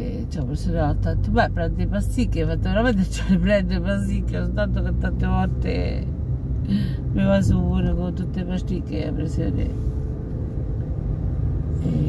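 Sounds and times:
car interior engine and road noise: 0.0 - 12.0.

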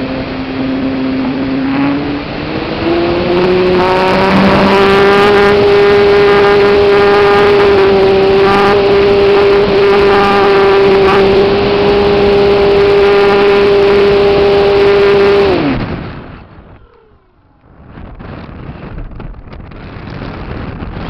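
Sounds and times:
wind rush over microphone: 0.0 - 21.0.

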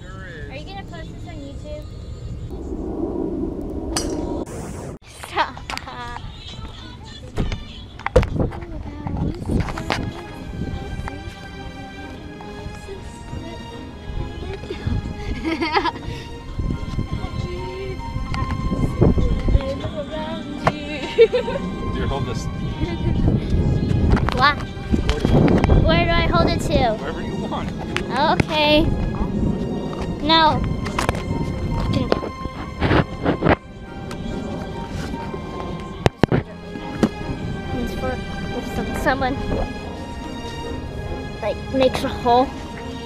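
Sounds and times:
wind buffeting microphone: 0.0 - 43.0
child's wordless voice: 24.3 - 24.6, 25.8 - 27.0, 28.1 - 28.9, 30.2 - 30.6, 41.4 - 42.6.

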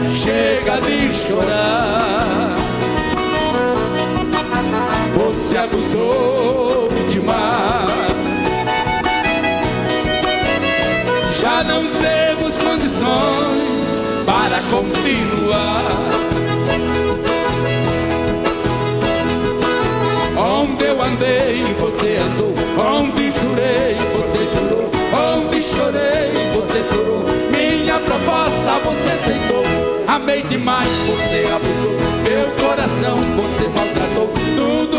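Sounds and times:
country band with singing: 0.0 - 34.9.

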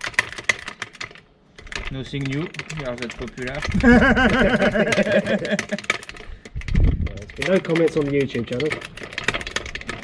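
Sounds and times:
floor jack clicking and rattling: 0.0 - 10.0.

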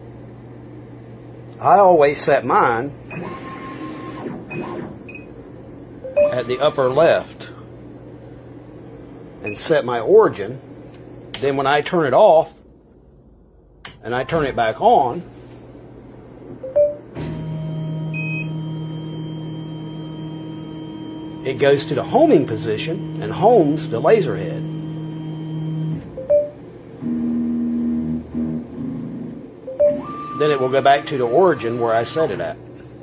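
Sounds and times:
many-toned machine hum: 0.0 - 33.0
high electronic beep: 6.1 - 6.7
click: 13.8 - 14.0.

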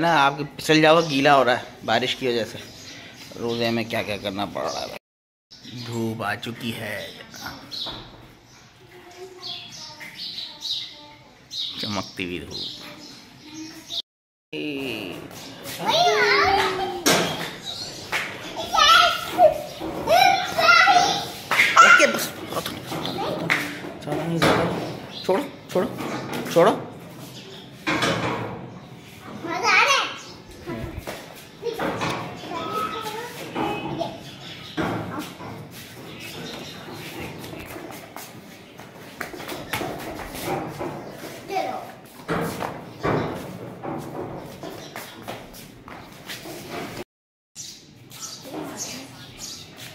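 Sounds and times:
children's voices: 8.7 - 11.5, 12.6 - 14.0, 15.6 - 23.8, 29.3 - 34.4, 41.2 - 42.1, 48.4 - 49.5.

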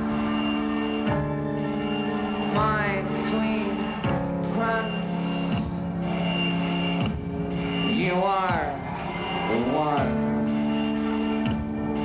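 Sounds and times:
rock band playing held notes: 0.0 - 12.0.

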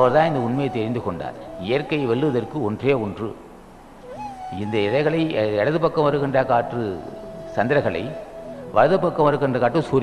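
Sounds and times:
man speaking into a microphone: 0.0 - 3.4, 4.5 - 10.0.

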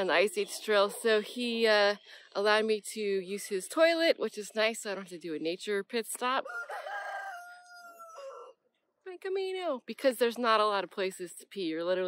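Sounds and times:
rooster crowing: 6.4 - 8.6.

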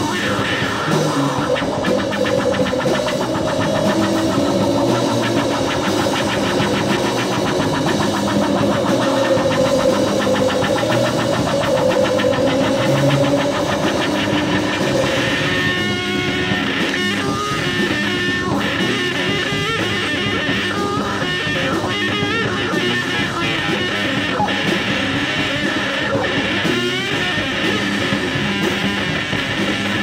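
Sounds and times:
distorted electric guitar drone: 0.0 - 30.0
rapid fluttering pulse: 1.3 - 16.4.

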